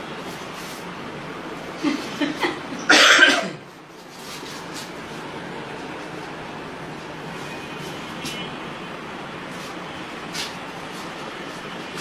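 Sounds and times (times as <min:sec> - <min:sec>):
person coughing: 0:02.8 - 0:03.6.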